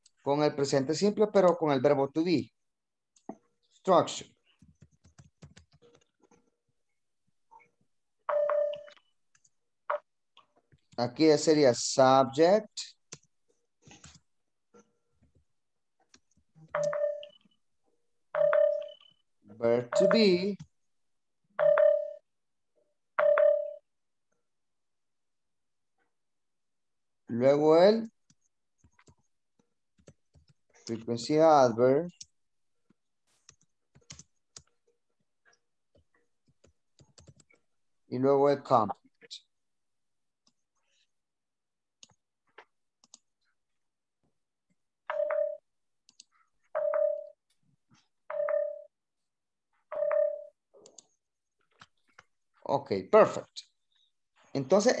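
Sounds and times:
short electronic beeps: 20.0s - 20.4s.

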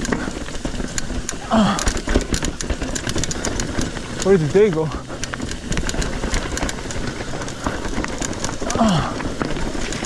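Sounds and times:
bike tyres rolling on rock: 0.0s - 10.0s
chain and frame rattling: 0.0s - 10.0s.

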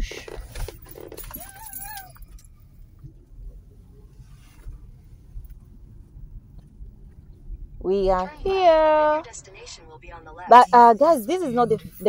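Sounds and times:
low steady rumble: 0.0s - 12.0s
sharp clinks: 0.7s - 2.7s
person speaking: 7.8s - 12.0s.

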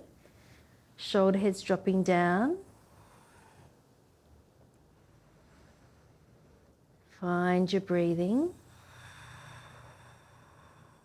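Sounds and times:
low room hum: 0.0s - 11.0s
soft breath out: 2.7s - 3.9s, 8.6s - 11.0s.

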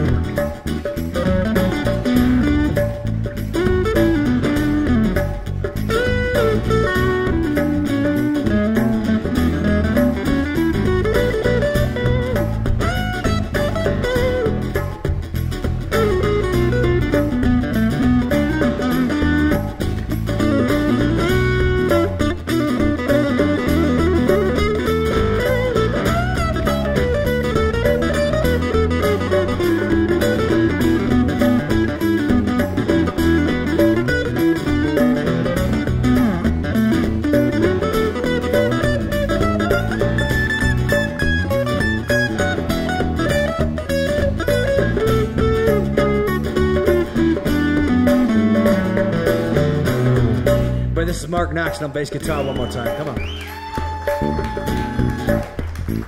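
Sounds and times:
acoustic guitar picking: 0.0s - 53.4s
electric bass guitar: 0.0s - 56.0s.

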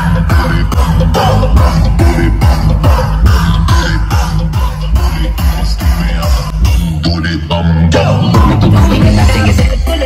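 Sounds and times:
bass drum beat: 0.0s - 10.0s
loud dance music: 0.0s - 10.0s.

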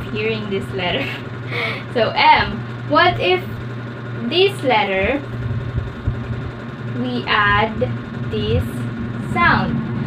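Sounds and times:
low room hum: 0.0s - 10.0s
soft low thumps: 5.1s - 6.7s.

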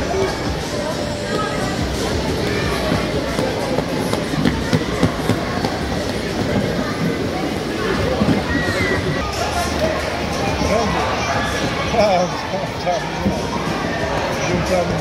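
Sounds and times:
babble of voices: 0.0s - 15.0s.

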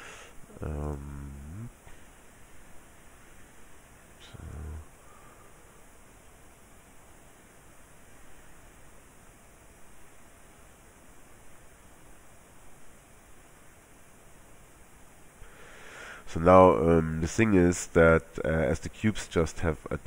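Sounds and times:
microphone hiss: 0.0s - 20.0s
brief low vocal sound: 0.5s - 1.8s, 4.2s - 5.4s.

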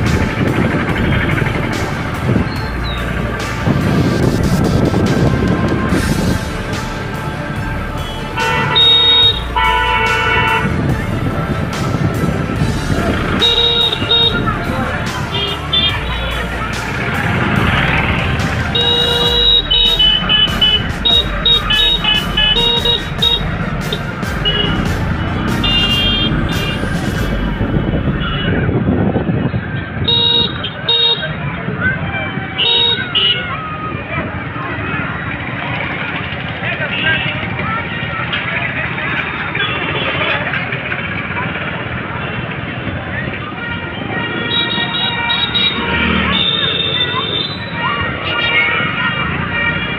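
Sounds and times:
crowd noise: 0.0s - 49.9s
motorcycle engines running: 0.0s - 49.9s
traffic noise: 0.0s - 49.9s
vehicle horns honking: 7.9s - 10.9s, 13.1s - 16.5s, 17.3s - 28.8s, 29.9s - 31.4s, 32.6s - 33.5s, 44.4s - 47.9s
high electronic tune: 17.8s - 28.5s.

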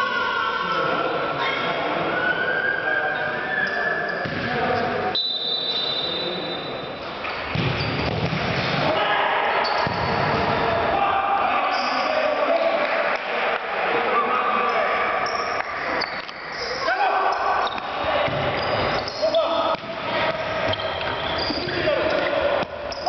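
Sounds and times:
ball kicked and bouncing: 4.2s - 4.5s, 7.5s - 8.8s
referee whistle: 5.1s - 7.0s, 20.7s - 21.8s
players shouting: 8.8s - 23.0s.

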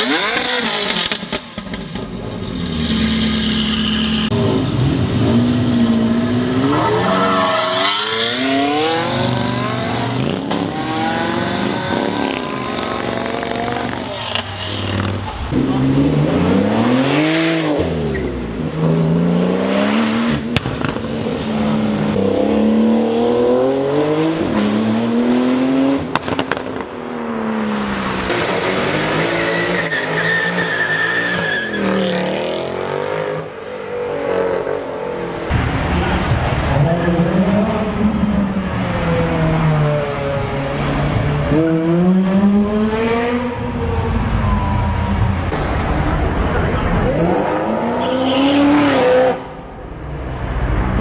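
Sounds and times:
car engines revving and accelerating: 0.0s - 51.0s
tyre squeal: 29.4s - 32.0s.

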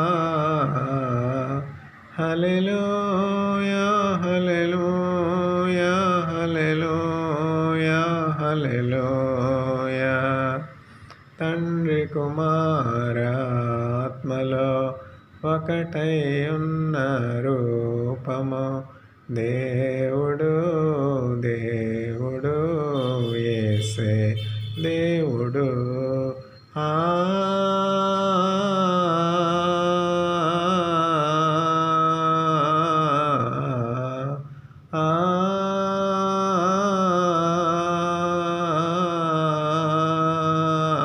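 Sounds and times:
man singing chant-like song: 0.0s - 41.0s.

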